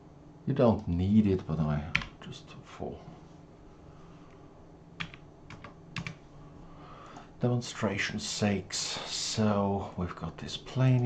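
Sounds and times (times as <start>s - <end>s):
computer keys clicking: 5.0s - 6.2s.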